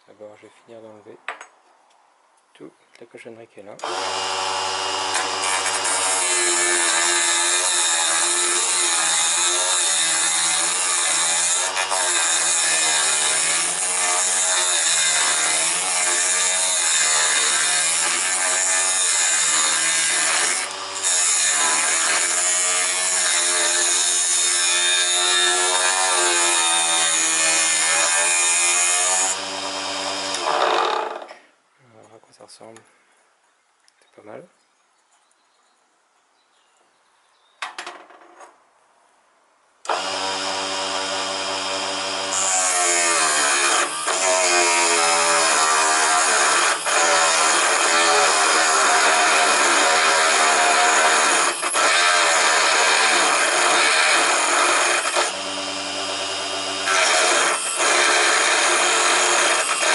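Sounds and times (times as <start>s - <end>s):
chisel cutting spinning wood: 39.9s - 59.9s.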